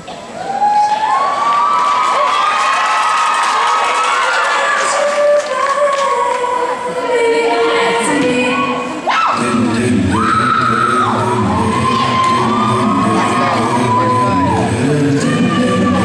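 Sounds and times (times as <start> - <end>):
crowd cheering and screaming: 0.3 - 5.9, 10.1 - 16.0.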